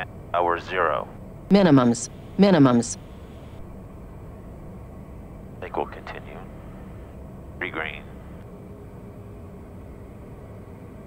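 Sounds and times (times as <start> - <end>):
turboprop engine and propeller drone: 0.0 - 11.0.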